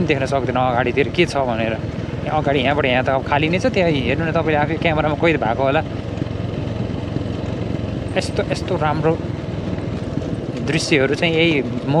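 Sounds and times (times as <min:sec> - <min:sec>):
man speaking: 0:00.0 - 0:05.9, 0:08.2 - 0:09.2, 0:10.6 - 0:12.0
motorcycle engine running: 0:00.0 - 0:12.0.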